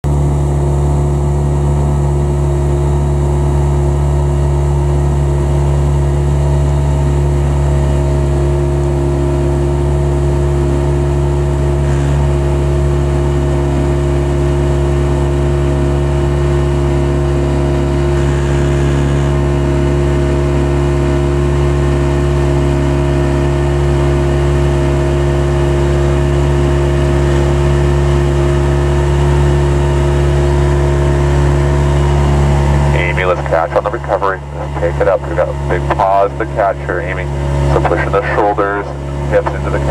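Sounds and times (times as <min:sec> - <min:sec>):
outboard motor running: 0:00.0 - 0:39.9.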